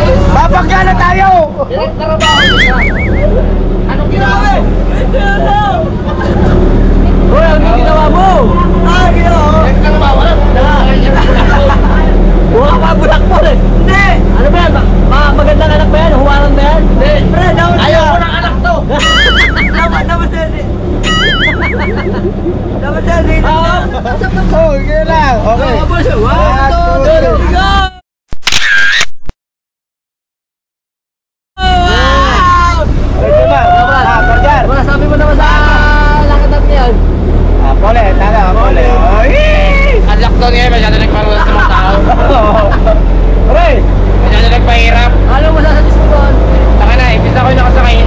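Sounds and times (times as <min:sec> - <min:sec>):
men laughing and shouting: 0:00.1 - 0:27.9, 0:31.6 - 0:36.7, 0:38.3 - 0:48.0
boat engine droning: 0:02.1 - 0:24.9.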